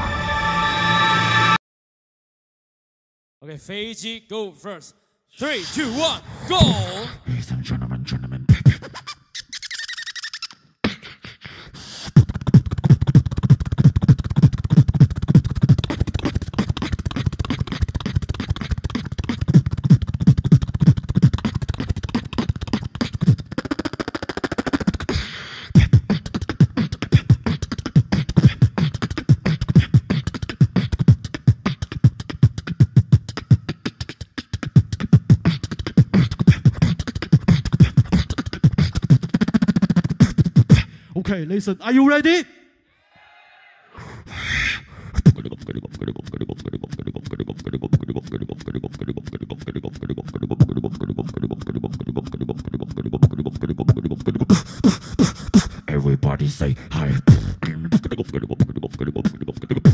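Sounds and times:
beatboxing through microphone: 5.4 - 41.7, 44.0 - 59.9.

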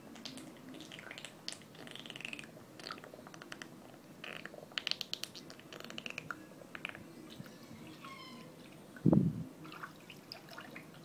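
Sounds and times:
pool water lapping and splashing: 0.0 - 3.4, 8.3 - 11.0
water drips and clicks: 0.1 - 7.0.

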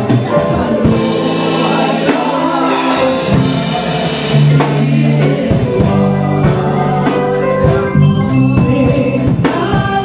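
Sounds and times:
vocal group singing in harmony: 0.0 - 10.0
drum hit: 0.7 - 6.7.

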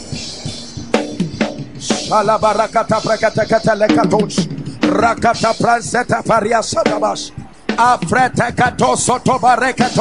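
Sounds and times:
man praying rapidly into microphone: 1.9 - 10.0.

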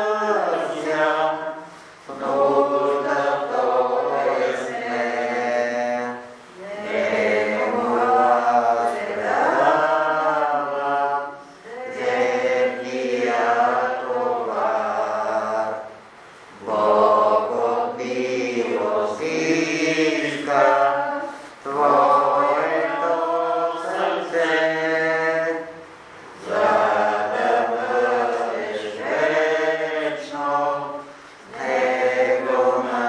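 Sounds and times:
voices singing a chant-like hymn: 0.0 - 33.0.

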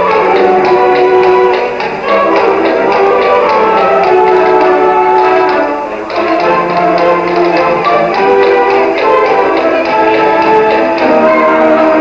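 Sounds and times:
concert band wind chords: 0.0 - 12.0
steady light tapping beat: 0.0 - 12.0.

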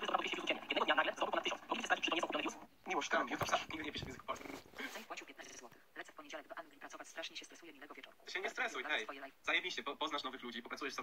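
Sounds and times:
muffled talking from speakers: 0.0 - 7.8.

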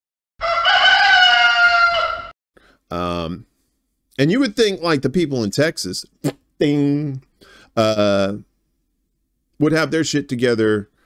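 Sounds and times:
rooster crowing: 0.4 - 2.4.

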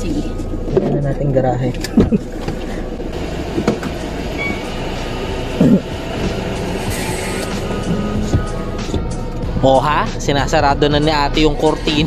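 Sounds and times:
car rumble inside cabin: 0.0 - 12.0.

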